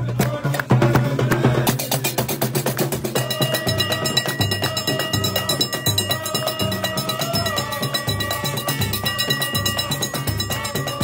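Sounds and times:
deep drum beats: 0.0s - 11.0s
clattering metal percussion: 1.7s - 11.0s.

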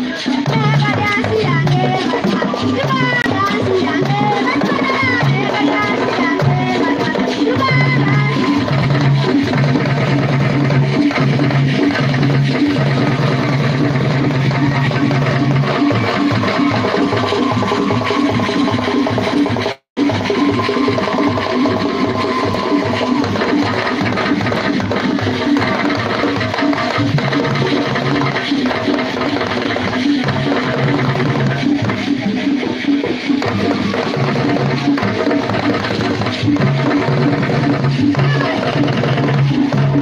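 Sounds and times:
drum ensemble fast rhythm: 0.0s - 40.0s.

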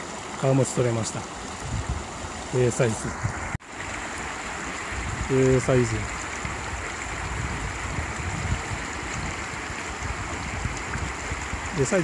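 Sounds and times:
river water rushing over rocks: 0.0s - 12.0s.

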